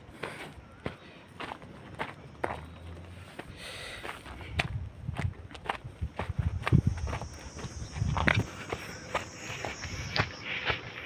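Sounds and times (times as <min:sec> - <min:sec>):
footsteps crunching on stony ground: 0:00.0 - 0:11.0.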